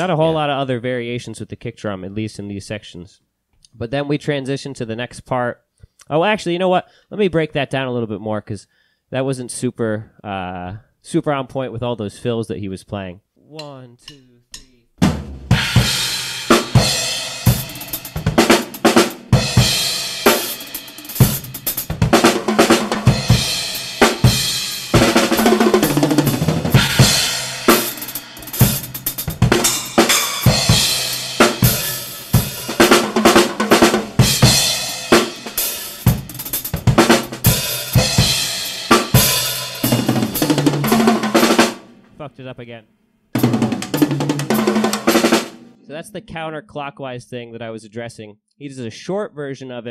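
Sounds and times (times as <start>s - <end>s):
rock drum kit playing: 15.0s - 42.1s, 43.4s - 45.8s.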